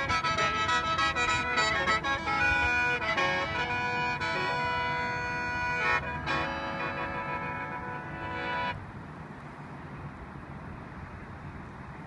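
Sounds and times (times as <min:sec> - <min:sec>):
mouth organ chord: 0:00.0 - 0:08.8.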